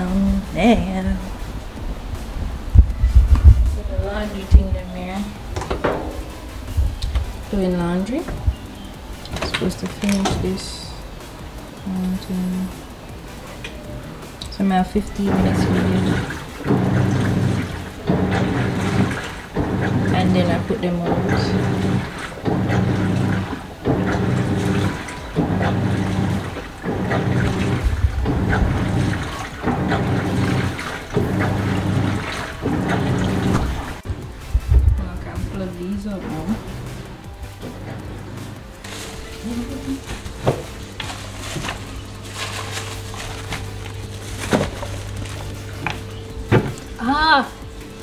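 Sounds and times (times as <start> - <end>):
steady low hum: 0.0 - 48.0
washing machine motor agitating: 0.0 - 48.0.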